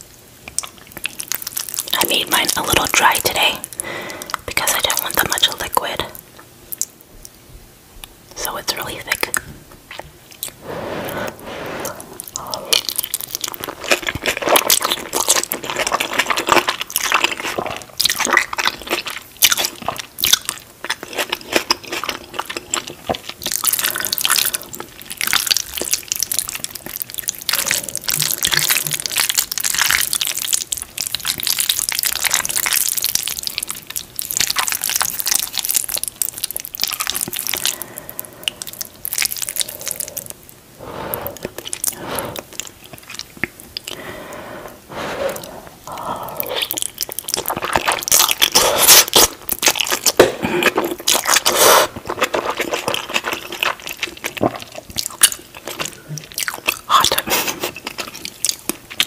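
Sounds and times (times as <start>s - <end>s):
chewing noodles: 0.4s - 2.9s, 9.3s - 59.0s.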